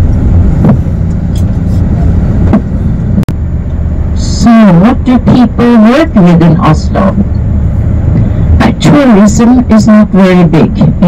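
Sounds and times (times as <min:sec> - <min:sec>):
vehicle rumble from inside cabin: 0:00.0 - 0:11.0.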